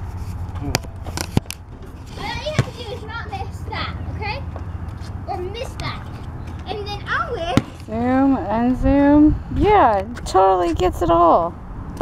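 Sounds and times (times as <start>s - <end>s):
children talking and calling out: 2.0s - 8.0s
basketball bouncing on asphalt: 2.2s - 3.1s, 4.0s - 9.0s.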